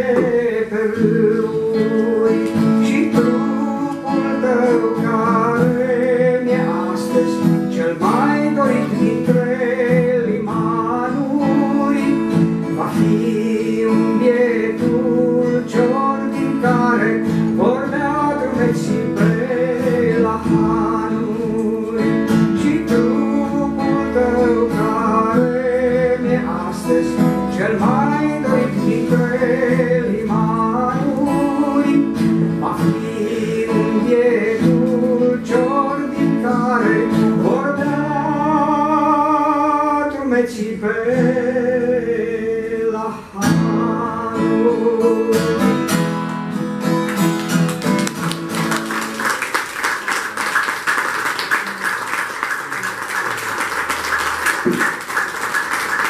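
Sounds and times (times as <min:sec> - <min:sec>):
man singing: 0:00.0 - 0:46.2
acoustic guitar chords: 0:00.0 - 0:56.0.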